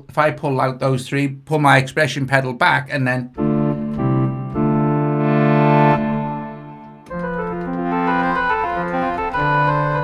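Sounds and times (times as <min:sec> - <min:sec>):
pipe organ chords: 0:03.3 - 0:10.0.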